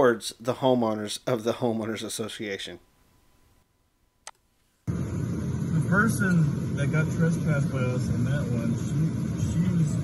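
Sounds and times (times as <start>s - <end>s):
outdoor noise: 3.0s - 10.0s
vehicle rumble: 4.9s - 10.0s.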